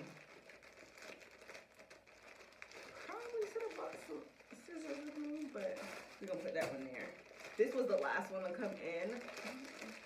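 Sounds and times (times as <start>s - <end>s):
plastic mailer bag crinkling: 0.0s - 10.0s.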